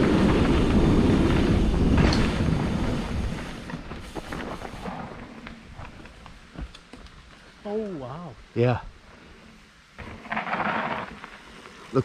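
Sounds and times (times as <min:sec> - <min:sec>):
bike tyres crunching on dirt trail: 0:00.0 - 0:12.0.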